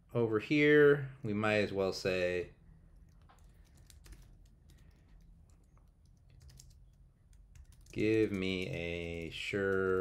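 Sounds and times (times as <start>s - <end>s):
keyboard typing: 2.9s - 10.0s.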